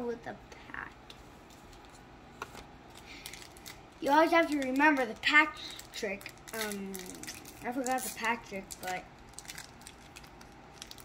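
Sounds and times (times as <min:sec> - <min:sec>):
trading cards rustling: 0:01.4 - 0:11.0.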